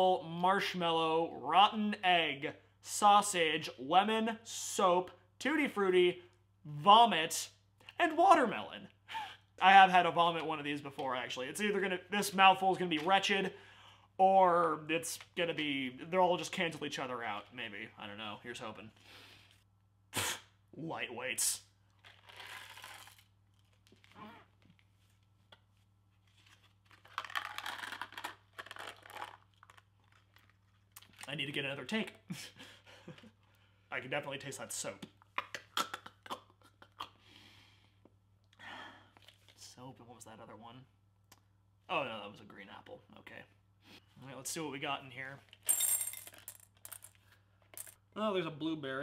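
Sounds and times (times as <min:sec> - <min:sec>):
candy rattling in box: 0:26.9 - 0:30.5
jelly beans clattering into bowl: 0:45.6 - 0:48.0.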